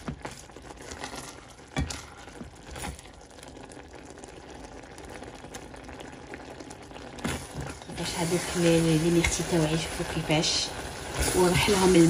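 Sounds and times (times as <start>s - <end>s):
berries bubbling in saucepan: 0.0s - 12.0s.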